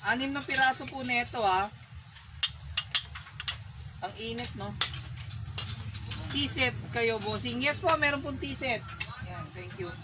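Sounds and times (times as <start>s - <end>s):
porcelain cups clinking: 2.3s - 10.0s.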